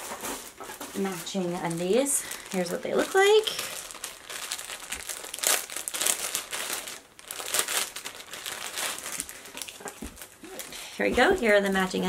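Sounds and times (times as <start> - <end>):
plastic bag crinkling: 0.0 - 12.0.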